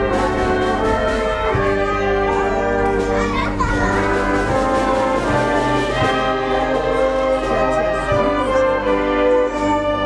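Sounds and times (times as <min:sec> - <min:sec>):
children calling and chattering: 0:00.0 - 0:10.0
wind band holding chords: 0:00.0 - 0:10.0.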